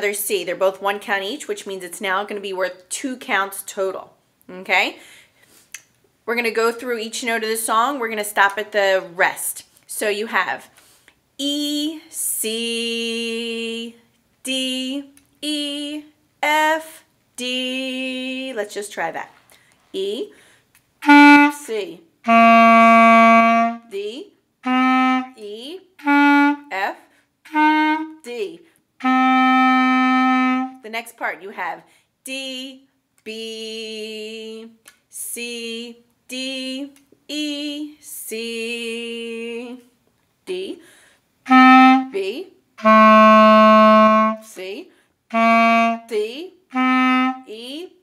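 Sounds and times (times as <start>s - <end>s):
woman singing with vibrato: 11.5s - 18.7s, 21.0s - 26.9s, 32.3s - 39.9s, 41.5s - 47.8s
clarinet phrase: 21.0s - 30.9s, 41.5s - 44.6s, 45.3s - 47.9s
clarinet held note: 22.3s - 23.9s, 24.6s - 25.4s, 29.0s - 30.8s.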